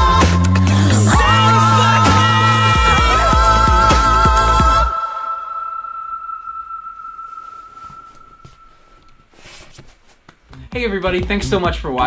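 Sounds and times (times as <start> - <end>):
soprano holding high note: 2.4 - 9.8.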